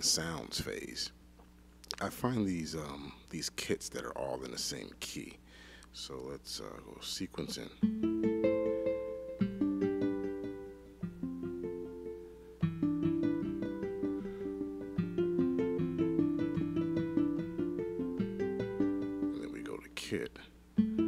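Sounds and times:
plucked guitar-like melodic sequence: 0:07.4 - 0:21.0.

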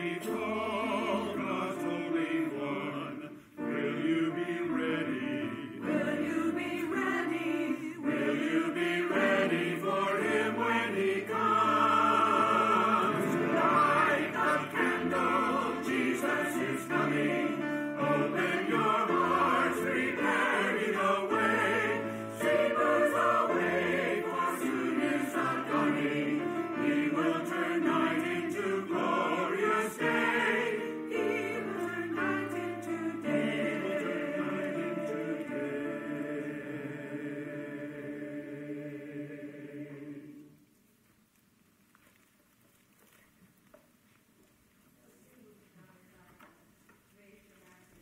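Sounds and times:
church choir singing: 0:00.0 - 0:40.7.

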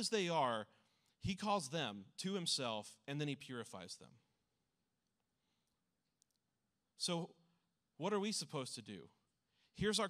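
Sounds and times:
man speaking: 0:00.0 - 0:04.3, 0:06.9 - 0:10.0.

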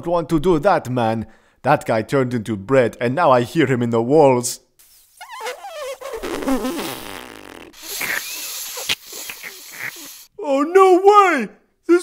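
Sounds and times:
cartoon fart sound effect: 0:04.8 - 0:10.3.

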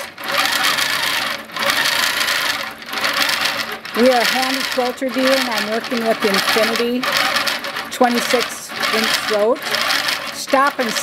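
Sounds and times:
quilting machine needle chatter: 0:00.0 - 0:11.0.

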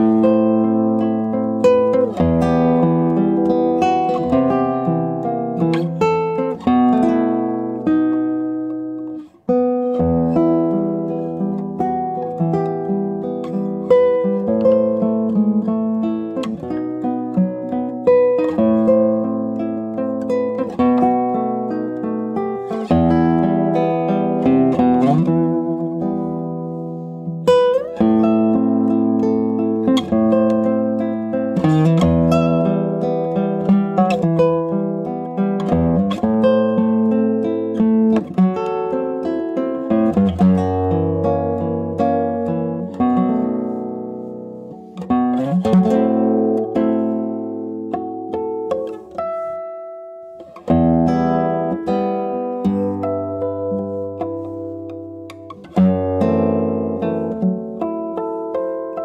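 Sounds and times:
classical guitar fingerstyle: 0:00.0 - 0:59.0.

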